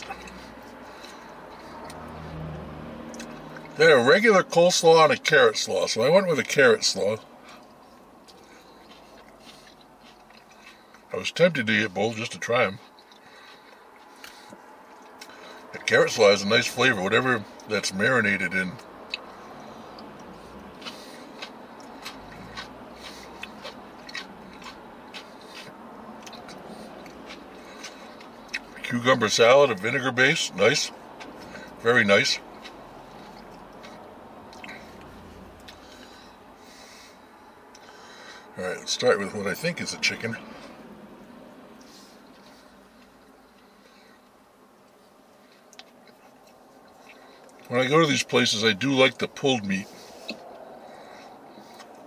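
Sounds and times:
steady background hum: 0.0 - 2.4, 3.0 - 52.0
man chewing: 0.0 - 3.8, 7.2 - 11.1, 12.8 - 15.8, 18.8 - 28.8, 30.9 - 31.8, 32.4 - 38.5, 40.5 - 47.7, 49.9 - 52.0
muffled road traffic rumble: 0.0 - 52.0.

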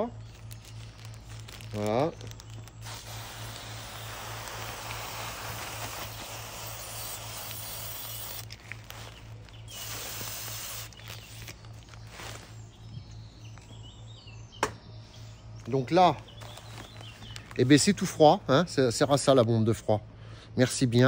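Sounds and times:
aerosol spray hissing: 2.8 - 11.4.

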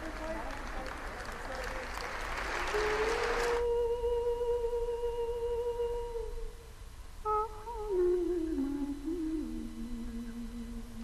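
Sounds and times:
singing voice holding high note: 1.5 - 6.6, 7.2 - 11.0.

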